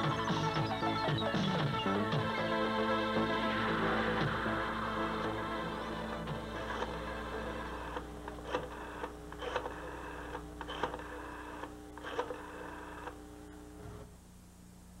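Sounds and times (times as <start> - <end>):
soft background music: 0.0 - 12.2
rotary telephone dial clicks: 7.9 - 13.2.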